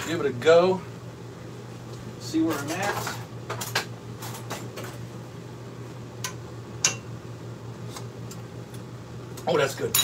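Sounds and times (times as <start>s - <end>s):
steady low hum: 0.0s - 10.0s
utensils clinking against cookware: 9.8s - 10.0s.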